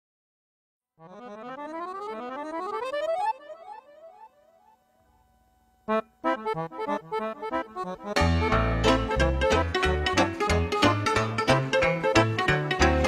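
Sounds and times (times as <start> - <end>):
button accordion playing: 1.0 - 4.3, 5.9 - 13.0.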